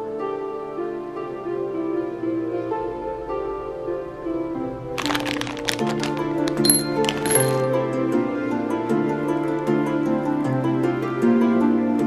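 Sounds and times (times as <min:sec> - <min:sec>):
gentle harp-like music: 0:00.0 - 0:05.0, 0:06.4 - 0:12.0
candy pouring with clicks: 0:05.0 - 0:07.7.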